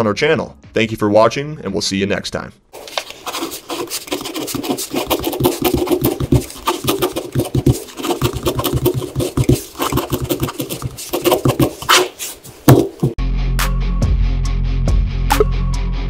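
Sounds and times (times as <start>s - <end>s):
pen scratching on paper: 2.8s - 13.2s.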